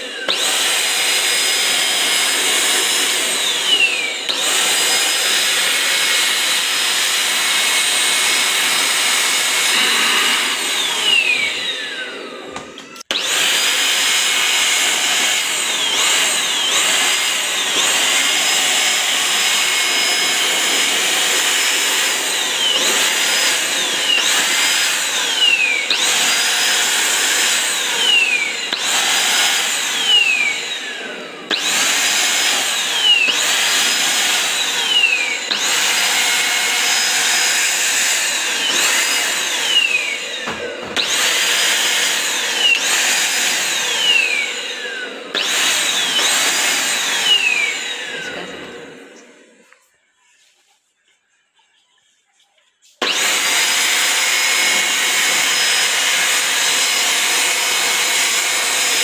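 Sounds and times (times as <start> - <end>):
handheld vacuum cleaner whine: 0.0 - 49.8, 53.0 - 59.0.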